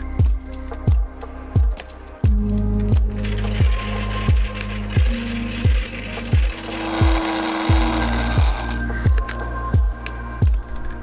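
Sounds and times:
background music with kick drum: 0.0s - 11.0s
manual coffee grinder grinding: 3.8s - 8.9s.

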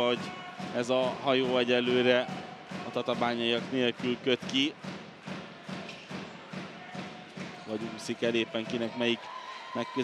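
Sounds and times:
crowd clapping in rhythm: 0.8s - 8.2s.

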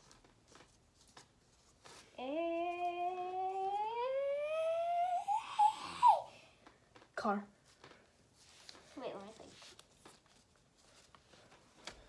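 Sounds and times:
child's drawn-out vowel: 2.2s - 6.3s.

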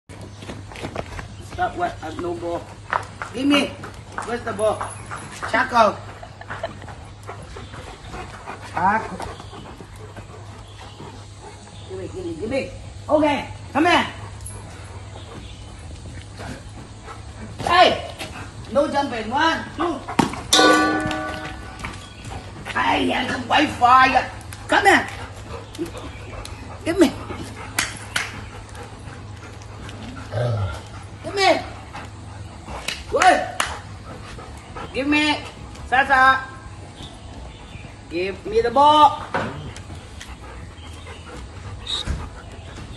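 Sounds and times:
dogs scuffling: 0.1s - 42.9s
low hum: 6.0s - 42.9s.

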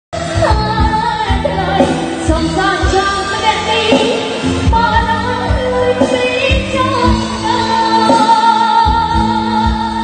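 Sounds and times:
live pop band playing: 0.1s - 10.0s
woman singing: 0.2s - 10.0s.

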